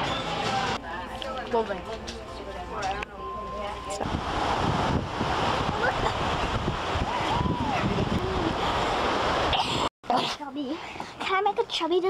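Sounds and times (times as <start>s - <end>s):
wind buffeting microphone: 3.9s - 9.9s
ocean surf: 4.0s - 9.9s.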